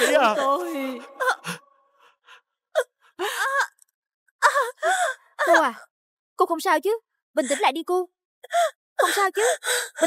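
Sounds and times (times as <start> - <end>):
woman crying wail: 0.0 - 1.6
woman sobbing: 0.0 - 1.8, 2.8 - 3.8, 4.4 - 5.8, 8.4 - 10.0.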